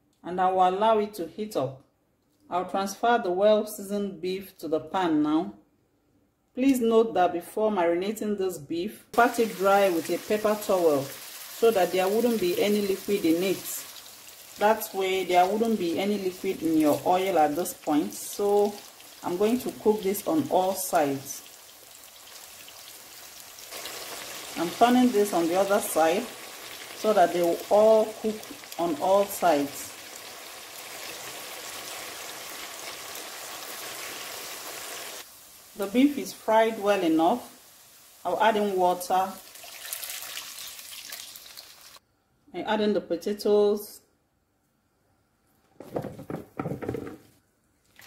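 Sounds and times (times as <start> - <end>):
meat sizzling in oil: 9.2 - 42.0.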